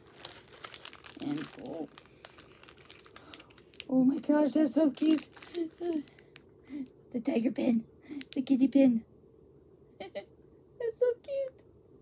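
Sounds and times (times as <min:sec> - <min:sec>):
packaging crinkling and rustling: 0:00.0 - 0:06.9.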